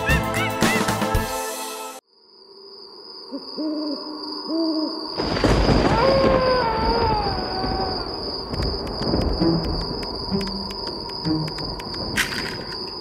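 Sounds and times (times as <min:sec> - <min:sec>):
owl hooting: 0:03.3 - 0:05.1.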